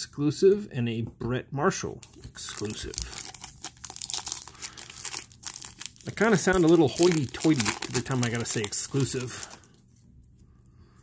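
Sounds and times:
cards crinkling and rustling: 2.0s - 9.9s.

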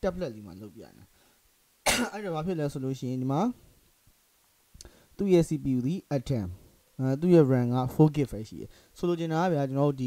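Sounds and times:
short sharp cough: 1.9s - 2.3s.

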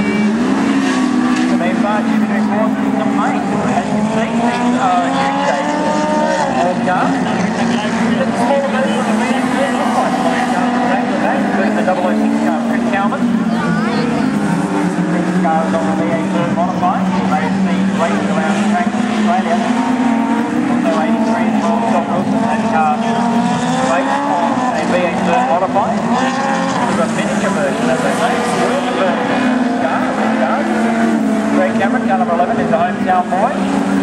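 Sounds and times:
race car engines: 0.0s - 34.0s.

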